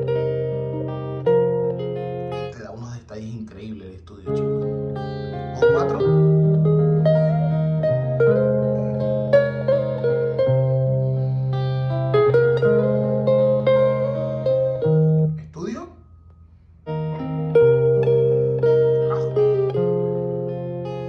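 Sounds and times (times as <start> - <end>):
plucked guitar-like music from speaker: 0.0 - 2.6, 4.3 - 21.0.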